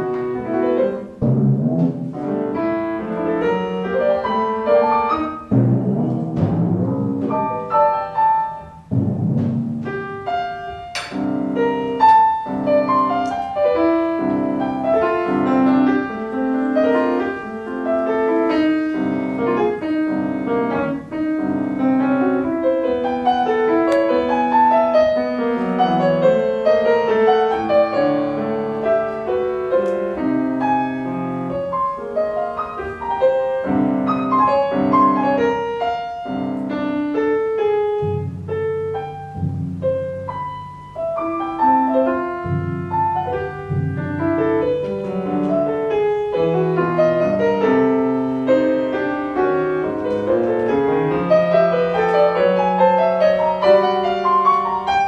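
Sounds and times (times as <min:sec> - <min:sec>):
grand piano playing fast passage: 0:00.0 - 0:55.0.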